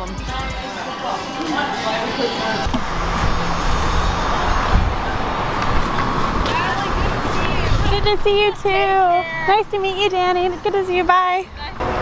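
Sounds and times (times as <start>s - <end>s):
traffic noise: 0.0s - 12.0s
steady low hum: 1.8s - 11.1s
wind rumble on microphone: 2.7s - 9.0s.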